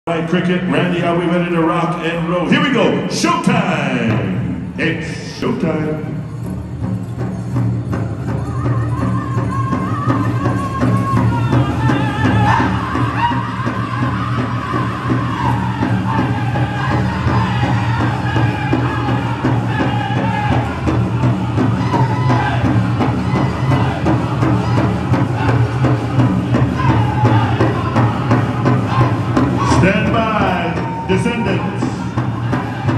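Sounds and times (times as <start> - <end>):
big drum beating: 2.5 - 32.9
voices singing in unison: 8.6 - 31.2, 31.8 - 32.9.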